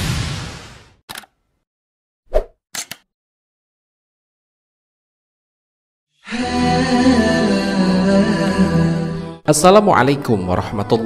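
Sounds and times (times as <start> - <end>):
loud hit sound effect: 0.0 - 1.0
short clicks: 1.1 - 1.4, 2.7 - 3.1.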